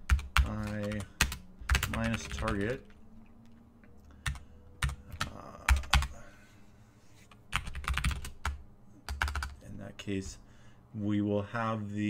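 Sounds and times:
computer keyboard typing: 0.0 - 3.0, 4.2 - 6.2, 7.5 - 9.6.

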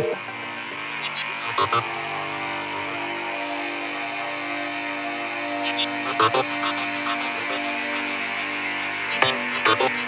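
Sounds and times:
sustained synthesizer drone: 0.0 - 10.0.

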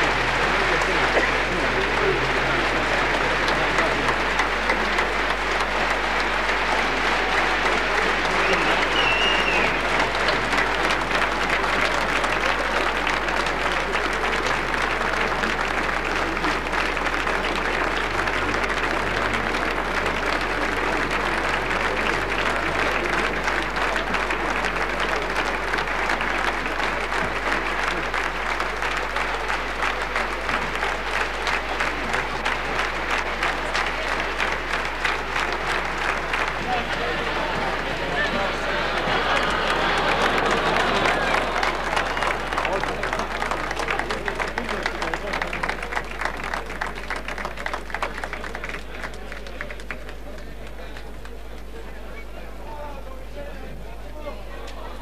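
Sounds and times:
audience applauding: 0.0 - 53.3
whistle: 8.4 - 9.8.

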